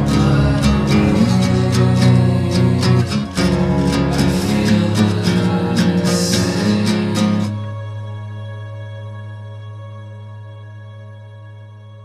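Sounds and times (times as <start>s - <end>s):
guitar strumming: 0.0s - 7.7s.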